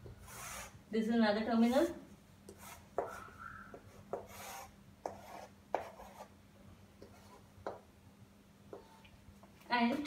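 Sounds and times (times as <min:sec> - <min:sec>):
chalk scratching on blackboard: 0:00.2 - 0:00.8, 0:01.6 - 0:06.3, 0:07.0 - 0:07.8
chalk tapping on blackboard: 0:02.5 - 0:06.3, 0:07.0 - 0:07.9
chalk squeak: 0:02.6 - 0:06.2.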